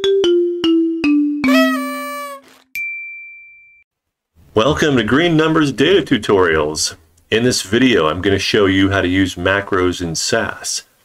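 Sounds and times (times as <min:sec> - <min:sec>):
high pure tone: 0:01.5 - 0:02.6.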